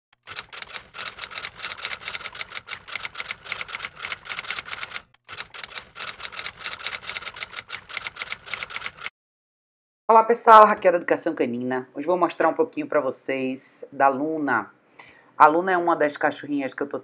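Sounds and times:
typewriter keystroke clicks: 0:00.2 - 0:09.1.

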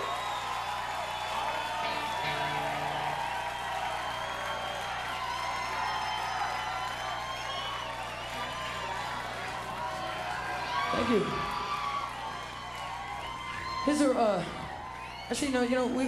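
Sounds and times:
crowd cheering whooping whistling: 0:00.0 - 0:15.9
low amplifier hum: 0:01.7 - 0:15.9.

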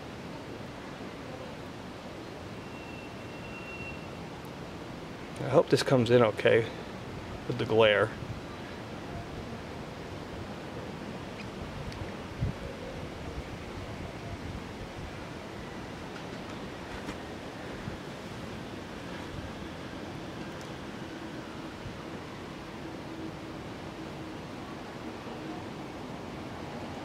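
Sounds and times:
wind on microphone: 0:11.4 - 0:15.5.

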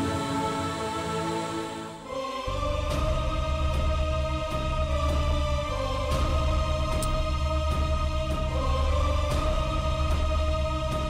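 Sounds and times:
deep bass drone: 0:02.5 - 0:11.0.

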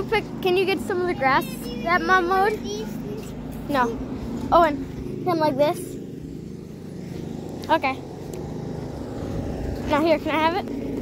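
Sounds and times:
lawn mower engine running: 0:00.0 - 0:11.0.

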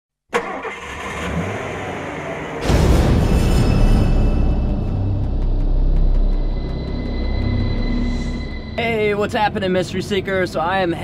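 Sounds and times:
car engine starting and running: 0:00.3 - 0:03.4.

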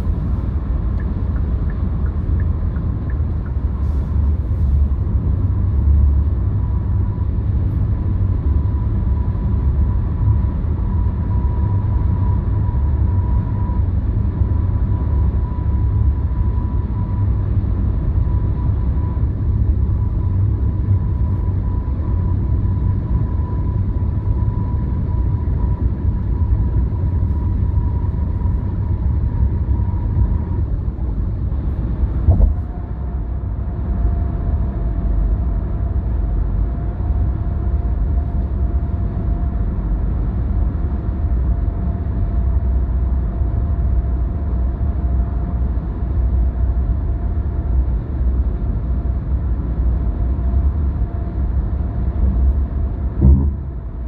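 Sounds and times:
faint steady whine: 0:00.0 - 0:54.0
road and tyre rumble: 0:00.0 - 0:54.0
brief knock: 0:32.3 - 0:32.6, 0:53.2 - 0:53.8.

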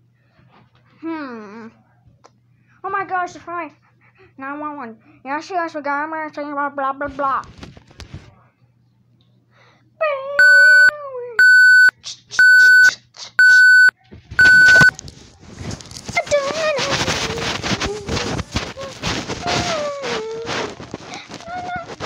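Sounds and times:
child's voice: 0:02.8 - 0:03.8, 0:16.1 - 0:22.0
loud electronic beeps: 0:10.4 - 0:14.9.

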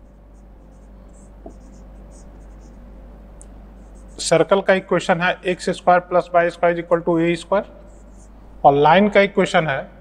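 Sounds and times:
marker pen scratching on whiteboard: 0:00.0 - 0:02.9, 0:03.8 - 0:04.5, 0:07.9 - 0:08.4
steady low hum: 0:00.0 - 0:10.0.

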